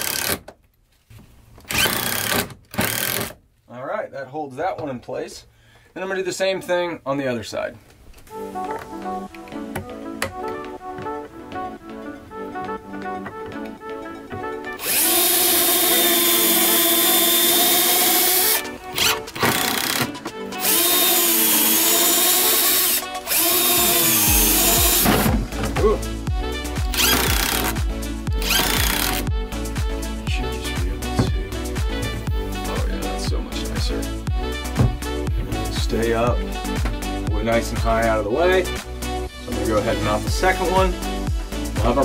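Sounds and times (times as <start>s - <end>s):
background music: 6.6s - 42.0s
cordless driver motor whine: 14.8s - 20.0s, 20.6s - 25.1s, 26.9s - 27.8s, 28.4s - 29.3s.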